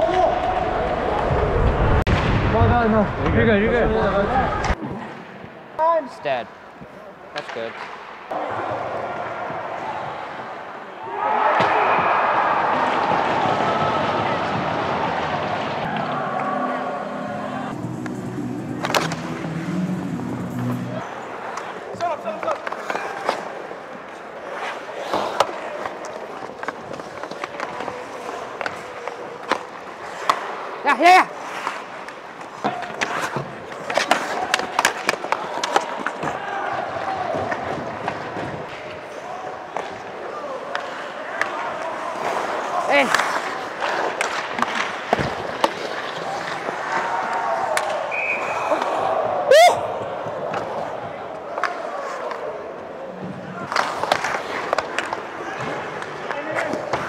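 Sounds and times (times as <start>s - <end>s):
hockey sticks and puck clacking: 6.2s - 10.6s, 12.6s - 57.0s
people shouting: 11.0s - 17.8s, 46.8s - 52.5s
skate blades scraping on ice: 17.8s - 36.4s, 42.0s - 49.4s, 53.3s - 57.0s.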